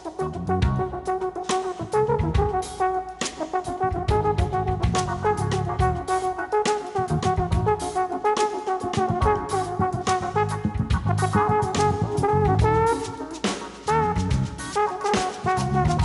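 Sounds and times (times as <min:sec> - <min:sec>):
brass instrument melody: 0:00.0 - 0:16.0
low bass part: 0:00.2 - 0:00.9, 0:04.0 - 0:06.1, 0:09.2 - 0:12.9, 0:13.9 - 0:14.6, 0:15.6 - 0:16.0
drum and cymbal hits: 0:10.9 - 0:16.0.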